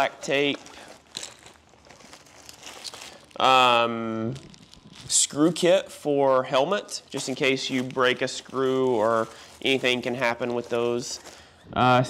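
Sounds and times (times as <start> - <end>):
rustling and crinkling bag: 0.0 - 11.6.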